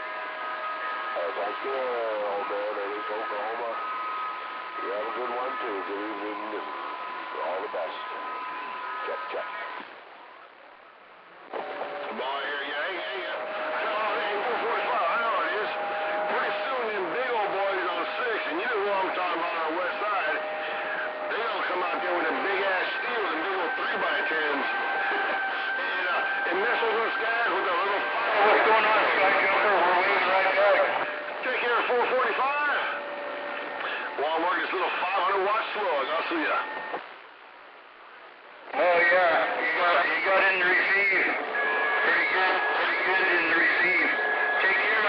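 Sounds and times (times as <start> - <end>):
radio whistle tones: 0.6 - 10.0, 11.5 - 37.2, 38.8 - 45.0
garbled radio voices: 0.8 - 10.1, 11.4 - 37.3, 38.1 - 45.0.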